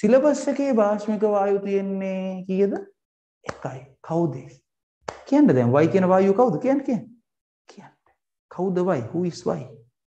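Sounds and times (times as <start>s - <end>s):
man speaking: 3.5s - 4.6s.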